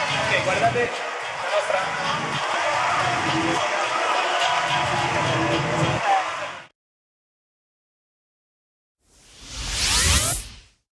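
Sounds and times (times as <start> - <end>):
whoosh with rising tones: 9.1 - 10.8.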